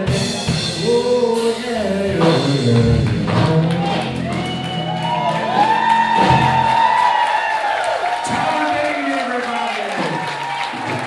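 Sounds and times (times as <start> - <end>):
low bass notes: 0.0 - 7.2.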